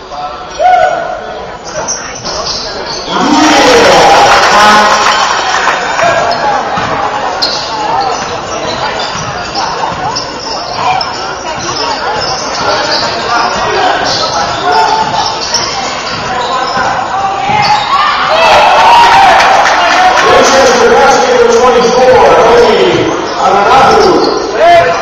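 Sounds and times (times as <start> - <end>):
echoing voices: 0.0 - 25.0.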